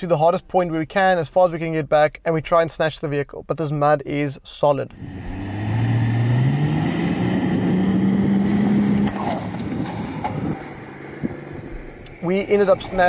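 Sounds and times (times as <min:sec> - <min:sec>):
engine revving: 0:04.9 - 0:13.0.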